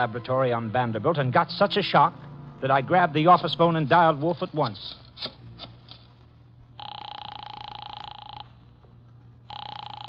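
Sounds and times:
telephone ringing: 0:06.8 - 0:10.0.

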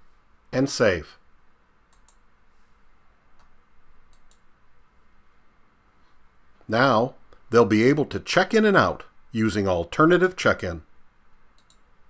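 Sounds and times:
faint computer mouse clicks: 0:01.9 - 0:02.2, 0:03.4 - 0:04.5, 0:11.5 - 0:11.9.

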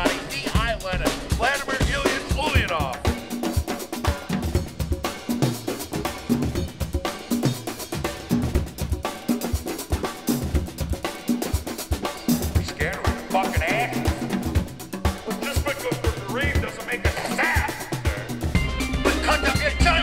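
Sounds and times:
drum kit beat: 0:00.0 - 0:20.0
bass line: 0:18.0 - 0:20.0.

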